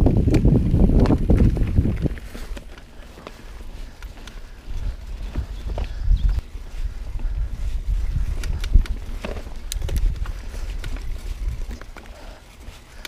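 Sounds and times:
mountain bike rumbling on dirt: 0.0 - 13.0
bike knocks and rattles: 7.9 - 13.0.

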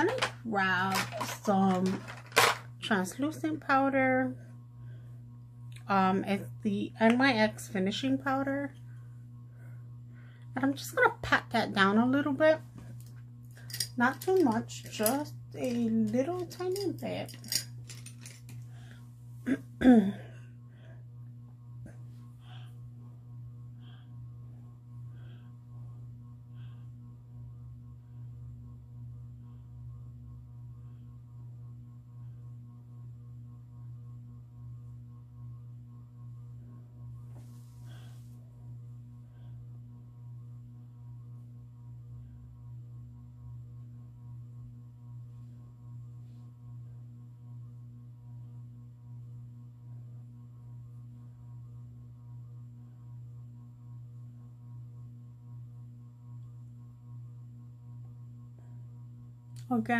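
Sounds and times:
ceiling fan humming: 0.0 - 59.9.

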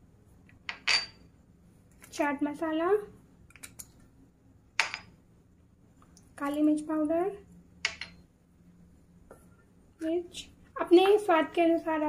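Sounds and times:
kitchenware clinking: 0.7 - 1.3, 4.8 - 5.2, 7.8 - 8.3.

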